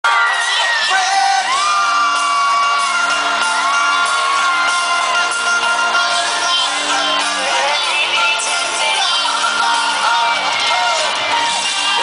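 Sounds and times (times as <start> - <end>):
loud live pop music: 0.0 - 12.0
crowd screaming and whooping: 0.1 - 12.0.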